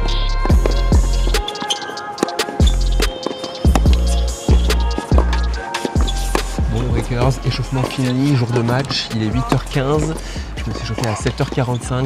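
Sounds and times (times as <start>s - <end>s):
music with heavy beat and bass: 0.0s - 12.0s.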